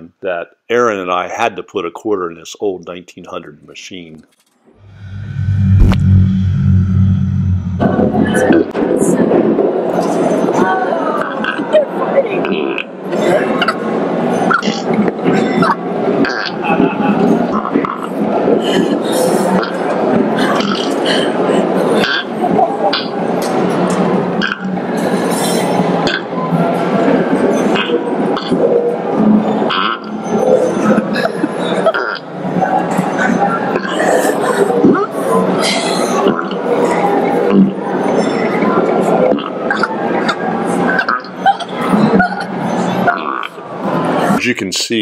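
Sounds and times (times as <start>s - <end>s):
low steady hum: 4.8s - 9.0s
recorded voices and music: 4.9s - 9.3s
people laughing: 16.4s - 17.6s, 18.4s - 22.9s, 30.8s - 37.3s, 39.7s - 43.2s.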